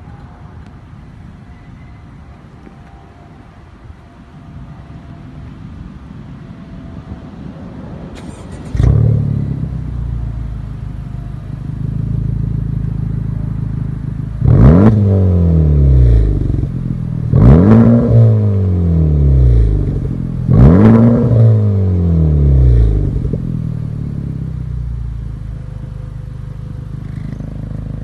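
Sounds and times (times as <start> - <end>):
low background noise: 0.0 - 28.0
car engine starting and idling: 7.7 - 28.0.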